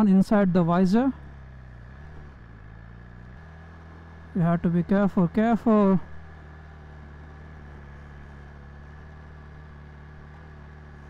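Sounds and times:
motorcycle engine running low revs: 0.0 - 11.0.

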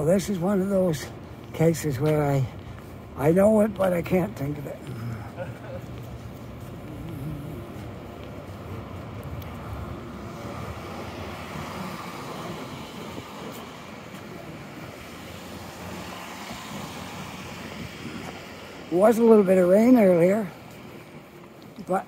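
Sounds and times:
cars driving by: 0.0 - 22.0.

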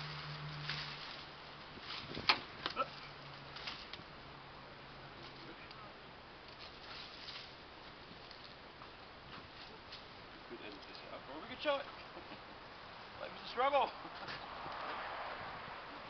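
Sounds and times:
hoses rustling and scraping on grass: 0.0 - 16.0.

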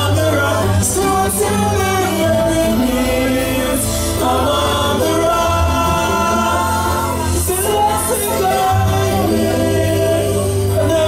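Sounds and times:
live band music: 0.0 - 11.0
steady bass: 0.0 - 11.0
voices singing sustained lines: 0.0 - 11.0.

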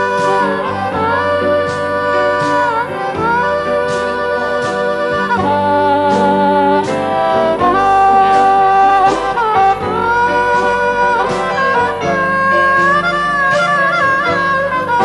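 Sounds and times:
backing band: 0.0 - 15.0
harmonica solo: 0.0 - 15.0.

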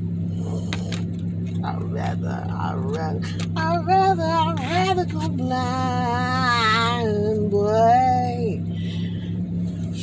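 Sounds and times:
car engine drone inside cabin: 0.0 - 10.0
woman singing: 1.6 - 8.6.

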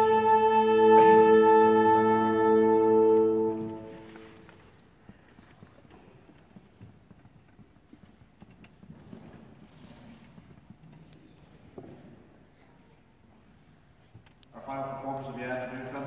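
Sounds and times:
concert band wind instruments chord: 0.0 - 4.6.

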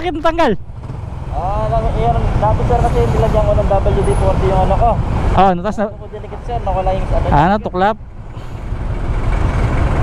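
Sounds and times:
passing vehicle engine and road noise: 0.0 - 10.0.

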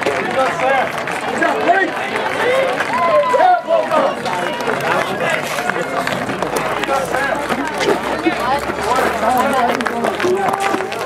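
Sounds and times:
many voices talking and calling: 0.0 - 11.0.

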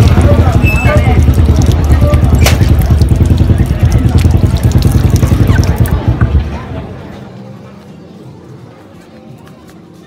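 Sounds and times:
water splashing over hands: 0.0 - 6.2
loud steady low rumble: 0.0 - 7.0.

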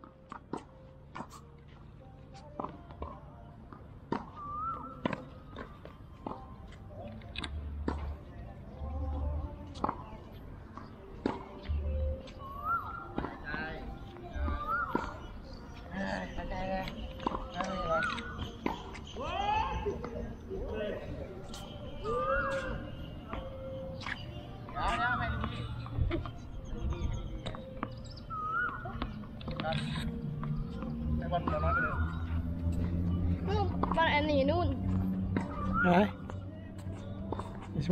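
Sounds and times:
tennis balls struck and bouncing: 0.0 - 37.9
shoe squeak: 4.2 - 7.6, 10.8 - 37.9.

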